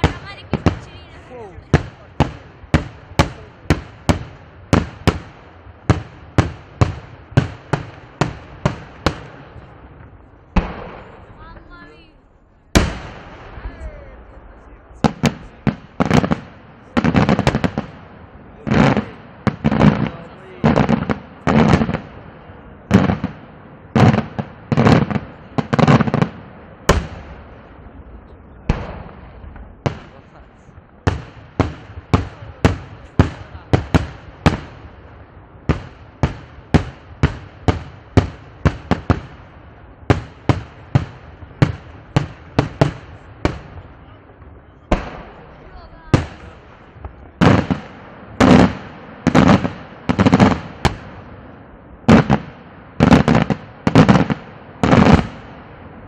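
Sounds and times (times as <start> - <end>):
fireworks bursting and banging: 0.0 - 56.0.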